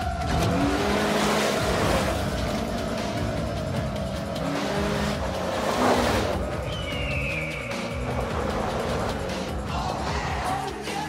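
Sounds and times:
off-road vehicle accelerating: 0.0s - 11.0s
rock music: 0.0s - 11.0s.

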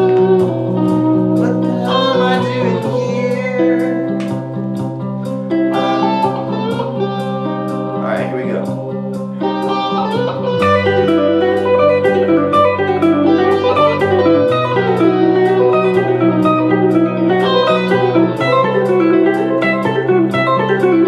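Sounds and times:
electric guitar arpeggio runs: 0.0s - 21.0s
held low guitar chords: 0.0s - 21.0s.

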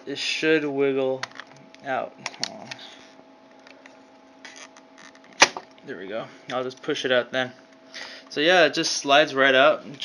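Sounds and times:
sharp click of drive unplugging: 5.4s - 5.6s.

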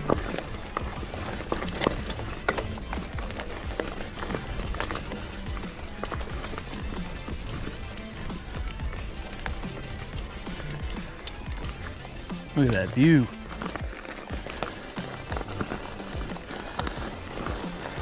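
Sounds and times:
background music: 0.0s - 18.0s
bike rolling on gravel: 0.0s - 18.0s
tyres clicking and rattling on stones: 0.0s - 18.0s.

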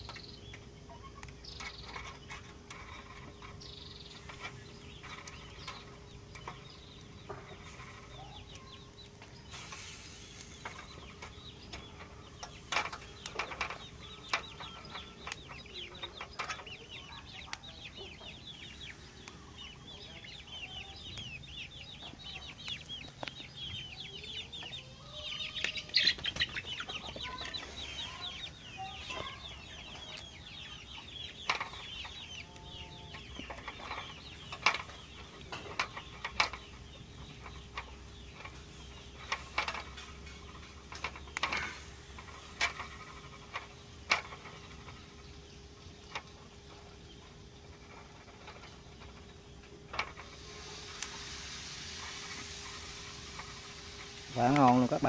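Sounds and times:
chickens clucking: 0.0s - 55.0s
high falling chirps: 2.9s - 55.0s.

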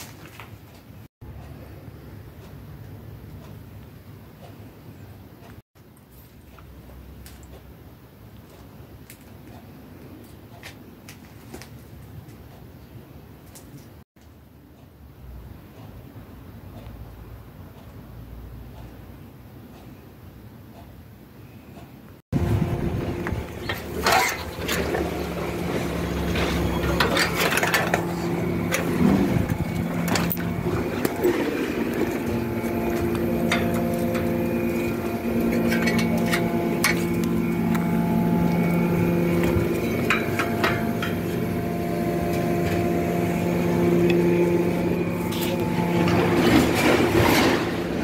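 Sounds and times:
engine hum: 22.3s - 48.0s.

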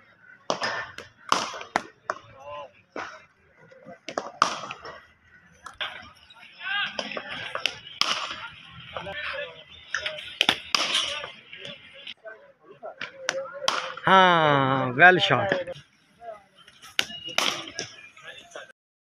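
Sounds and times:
cricket bat striking ball: 0.5s - 3.1s, 4.1s - 5.0s, 6.9s - 9.1s, 9.9s - 11.8s, 13.0s - 14.0s, 17.0s - 18.0s.

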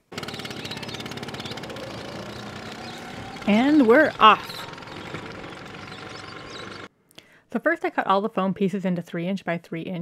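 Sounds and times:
scooter engine driving off: 0.0s - 6.9s
outdoor street hiss: 0.2s - 6.9s.

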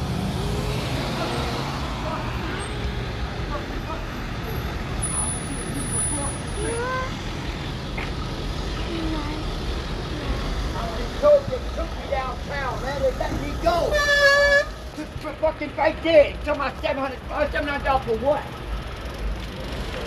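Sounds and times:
passing car engines and tyres: 0.0s - 20.0s.

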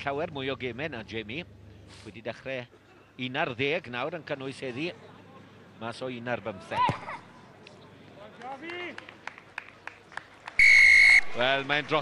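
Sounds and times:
referee's whistle blast: 10.6s - 11.4s.

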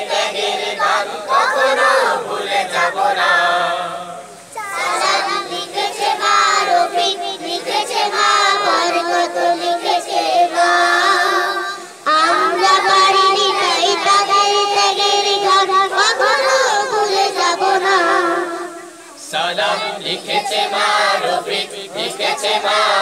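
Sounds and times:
children's choir singing: 0.0s - 23.0s.

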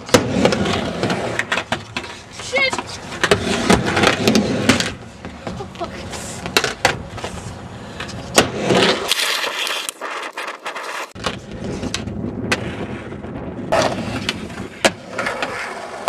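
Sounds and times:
skateboard clacking on surface: 0.0s - 12.6s
skateboard wheels rolling: 0.0s - 16.0s.

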